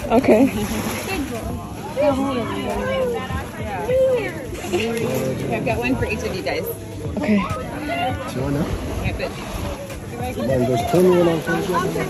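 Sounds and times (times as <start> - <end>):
people talking: 0.0 - 12.0
surf: 0.0 - 12.0.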